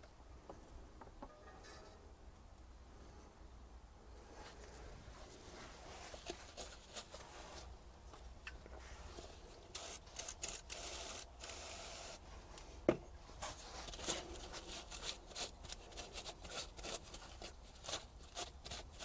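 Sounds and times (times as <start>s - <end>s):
gloved hands rubbing and scraping: 4.3s - 7.9s, 8.7s - 19.0s.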